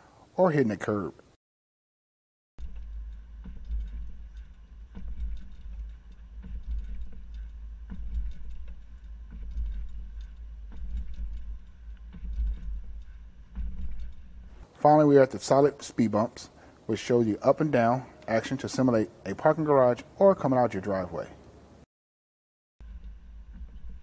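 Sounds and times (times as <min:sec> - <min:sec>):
bike rack clicking and rattling: 0:02.6 - 0:14.6
vehicle rumbling slowly: 0:02.6 - 0:14.7.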